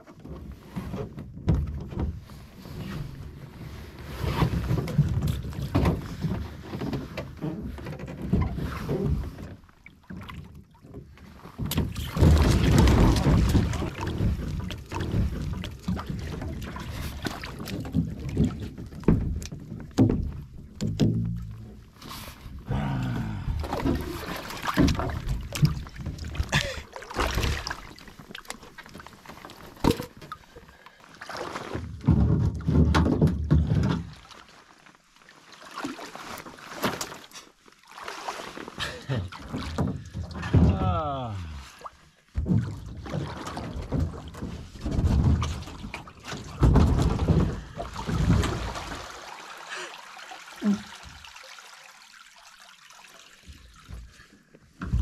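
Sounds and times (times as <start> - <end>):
water splashing and sloshing: 0.0 - 55.0
person wading in water: 2.3 - 32.0, 34.0 - 55.0
branches knocking against hull: 4.5 - 21.8, 22.6 - 30.7, 31.6 - 34.2, 42.3 - 48.8.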